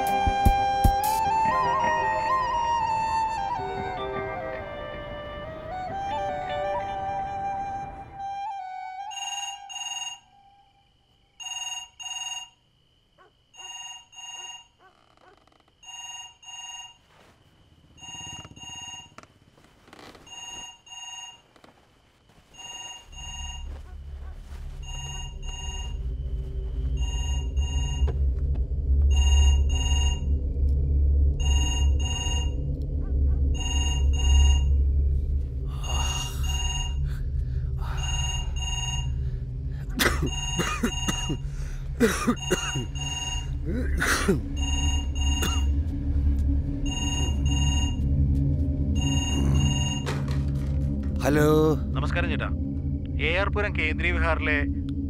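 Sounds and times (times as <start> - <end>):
telephone ringing: 9.1 - 10.7, 11.4 - 12.6, 13.6 - 14.8, 15.8 - 17.0, 17.9 - 19.3, 20.2 - 21.5, 22.6 - 23.7, 24.8 - 26.0, 27.0 - 28.1, 29.1 - 30.3, 31.4 - 32.6, 33.6 - 34.7, 35.9 - 37.0, 38.0 - 39.2, 42.4 - 43.6, 44.6 - 45.7, 46.8 - 48.1, 49.0 - 50.4
low rumbling drone: 23.1 - 55.0.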